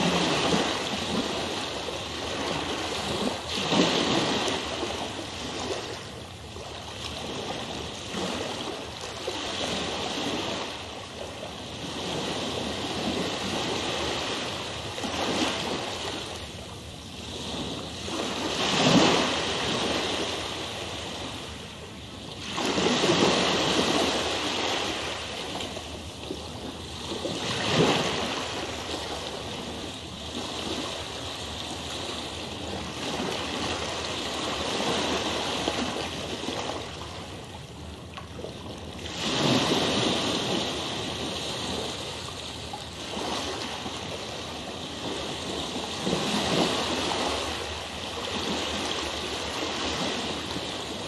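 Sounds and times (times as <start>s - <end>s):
rushing water: 0.0s - 51.0s.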